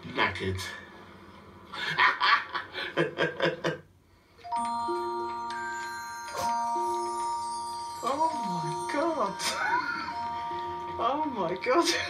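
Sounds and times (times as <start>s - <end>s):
man laughing: 1.8s - 3.8s.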